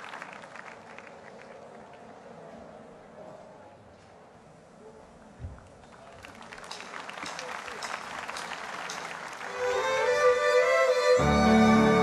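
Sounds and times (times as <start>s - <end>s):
crowd applauding: 0.0s - 2.1s, 5.9s - 12.0s.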